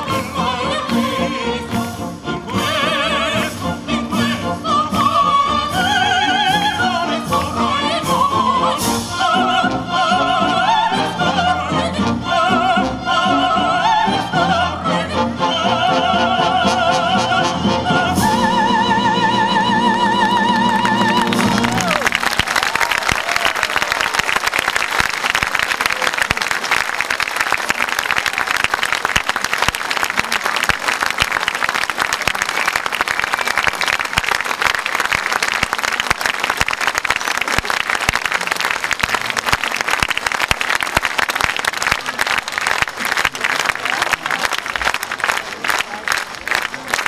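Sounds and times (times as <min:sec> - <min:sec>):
soprano and tenor singing: 0:00.0 - 0:22.3
symphony orchestra: 0:00.0 - 0:47.0
audience applauding: 0:20.2 - 0:47.0.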